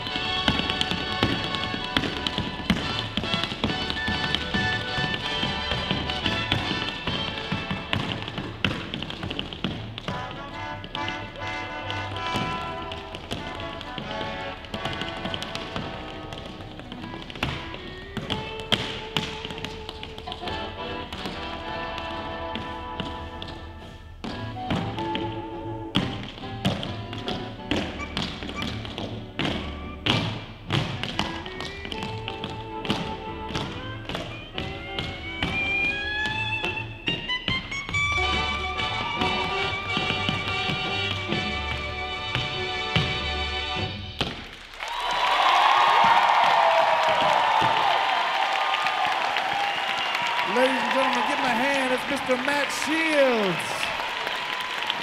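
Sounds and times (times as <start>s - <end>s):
music: 0.0s - 52.5s
tap shoes on wooden floor: 0.0s - 54.1s.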